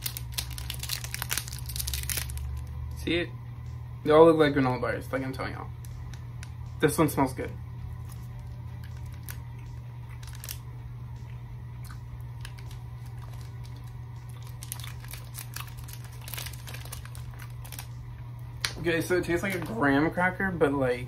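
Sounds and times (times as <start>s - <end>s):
foil wrapper crinkling: 0.0s - 2.7s, 8.0s - 10.7s, 11.8s - 18.8s
small crackles: 0.0s - 2.7s, 8.0s - 18.8s
low hum: 0.0s - 21.0s
person chewing: 11.2s - 17.8s.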